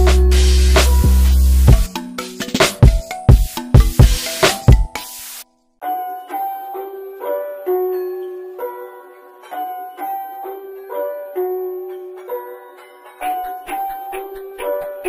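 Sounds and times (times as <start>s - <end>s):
plucked note melody: 0.0s - 5.0s, 5.8s - 15.0s
kick drum: 1.7s - 1.9s, 2.8s - 4.9s.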